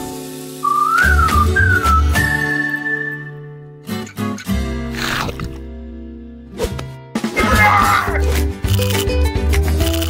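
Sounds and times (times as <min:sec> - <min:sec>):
cartoon whistle sliding up and down: 0:00.6 - 0:03.4.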